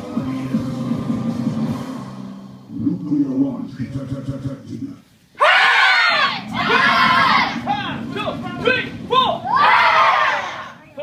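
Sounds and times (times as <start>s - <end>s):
children shouting together: 5.4s - 7.6s, 9.5s - 10.8s.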